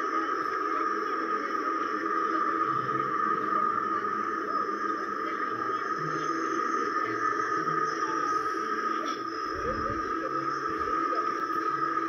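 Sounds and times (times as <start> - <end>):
jumble of video soundtracks: 0.0 - 12.0.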